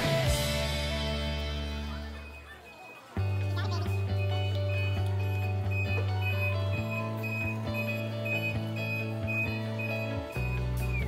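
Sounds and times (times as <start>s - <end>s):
held bass notes: 0.0s - 2.5s, 3.2s - 11.0s.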